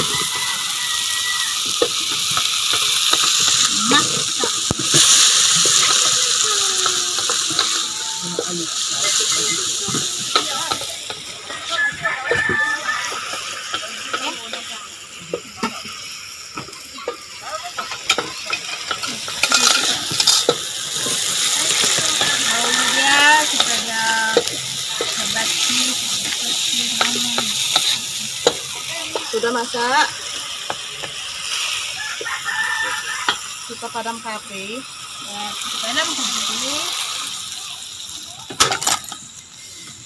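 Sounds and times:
greens sizzling in hot oil: 0.0s - 40.0s
wooden spatula scraping wok: 17.8s - 30.1s.

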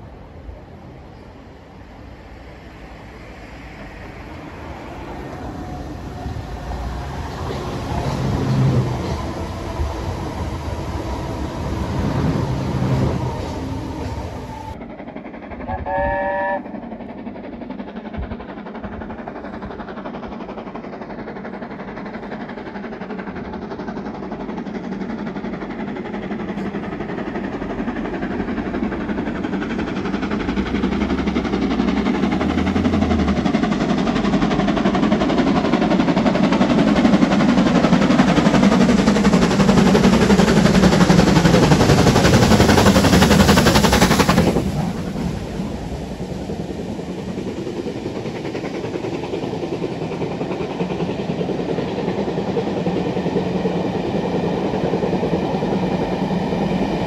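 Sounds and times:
steam locomotive exhaust beats: 0.0s - 57.0s
train rumble: 0.0s - 57.0s.

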